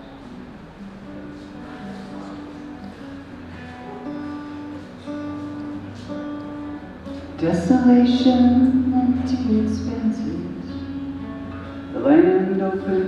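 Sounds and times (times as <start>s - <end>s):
acoustic guitar playing: 0.0s - 13.0s.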